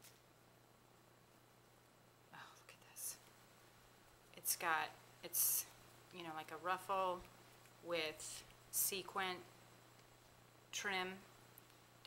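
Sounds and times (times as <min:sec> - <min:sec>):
low steady hum: 0:00.0 - 0:12.0
faint whispered voice: 0:02.3 - 0:03.3.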